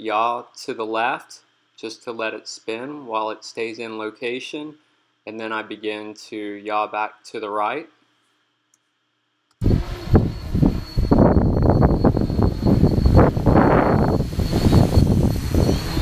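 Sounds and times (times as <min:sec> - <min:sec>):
drone motors whining: 0:09.6 - 0:16.0
wind buffeting microphone: 0:09.6 - 0:16.0.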